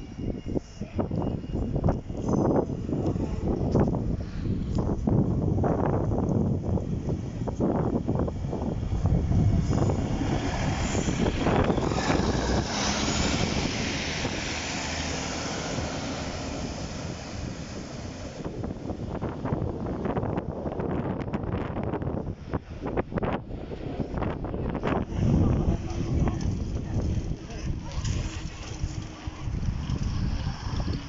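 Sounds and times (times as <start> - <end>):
diesel engines running: 0.0 - 20.4, 23.5 - 31.0
train rumble: 0.0 - 31.0.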